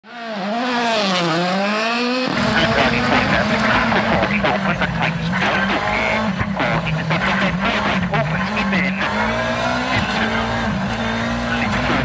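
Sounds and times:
rally car engine revving: 0.1 - 12.0
in-car engine running: 0.3 - 12.0.

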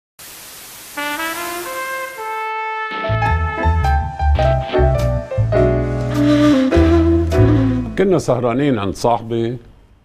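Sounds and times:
static hiss: 0.2 - 3.1
brass theme music: 1.0 - 8.3.

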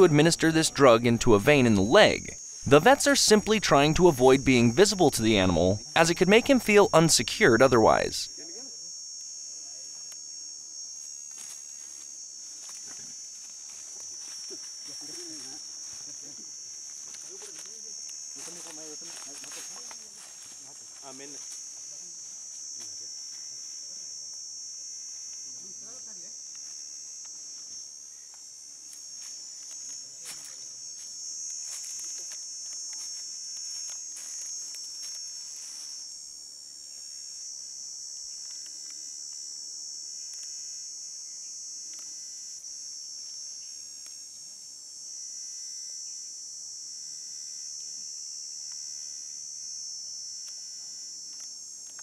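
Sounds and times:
high-pitched insect drone: 0.0 - 52.0.

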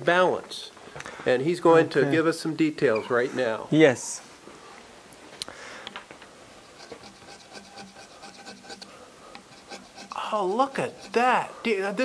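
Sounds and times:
gouge scraping and cutting wood: 6.6 - 11.5.

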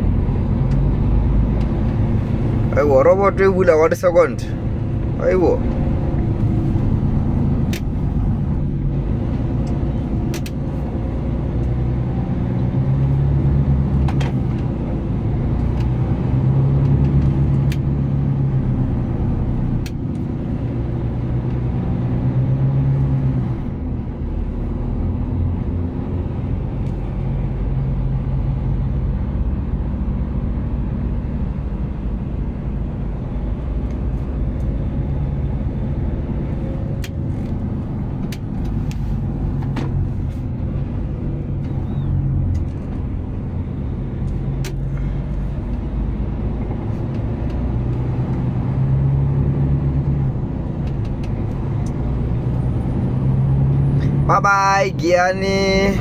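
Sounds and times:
truck engine and road noise: 0.0 - 56.0.

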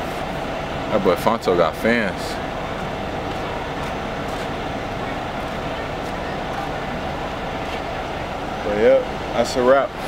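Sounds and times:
bus engine rumble and hum: 0.0 - 10.0.

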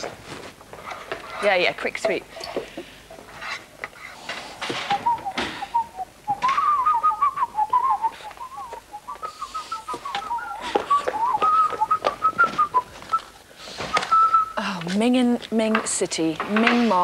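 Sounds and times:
person whistling a tune: 4.9 - 13.3, 13.9 - 14.7.

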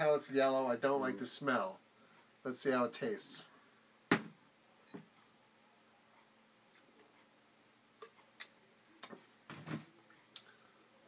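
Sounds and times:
mug set down knock: 4.1 - 4.4.

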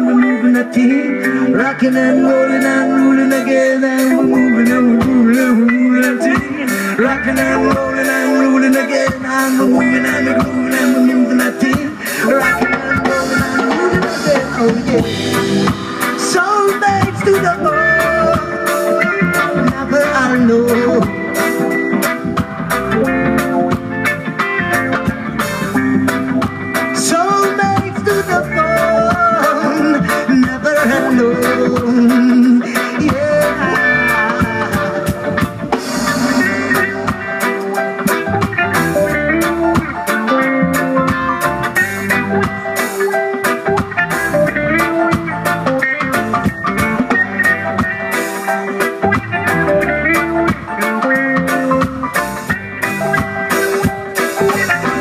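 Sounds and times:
bass: 0.0 - 55.0
drum kit: 0.0 - 55.0
electric guitars: 0.0 - 55.0
keyboard: 0.0 - 55.0.

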